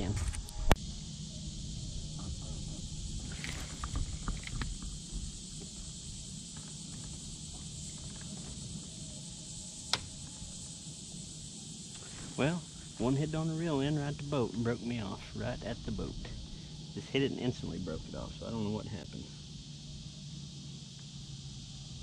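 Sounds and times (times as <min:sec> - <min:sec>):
high drone of insects: 0:00.0 - 0:22.0.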